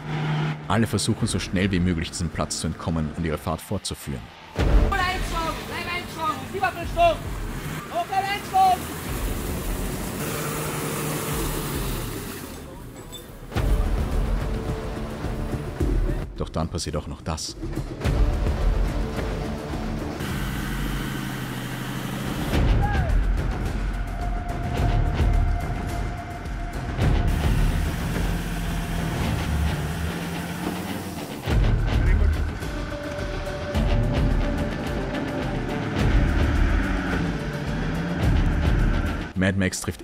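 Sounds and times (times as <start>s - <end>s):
engines revving through mud: 0.0s - 2.4s, 4.8s - 12.9s, 18.3s - 22.8s, 26.8s - 39.4s
background music: 0.0s - 40.0s.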